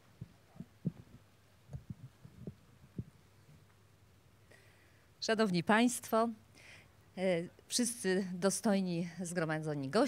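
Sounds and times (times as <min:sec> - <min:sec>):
microphones being handled: 0:00.0 - 0:03.9
faint sound system hum: 0:00.0 - 0:10.0.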